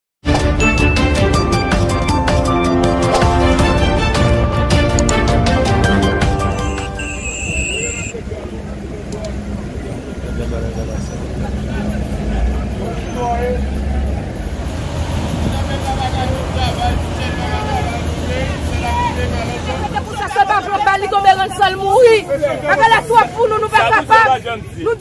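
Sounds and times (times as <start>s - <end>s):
vehicle engines rumbling: 0.4s - 25.0s
distant voices: 6.5s - 25.0s.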